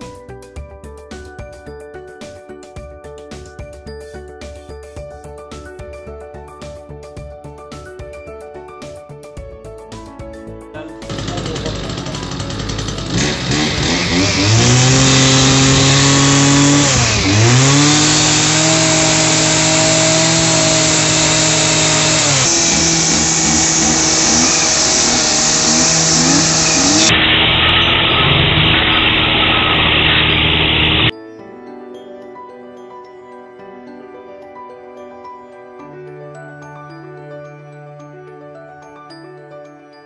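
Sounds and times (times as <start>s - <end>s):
light background music: 0.0s - 13.3s, 31.1s - 40.0s
brushcutter engine revving: 11.1s - 31.1s.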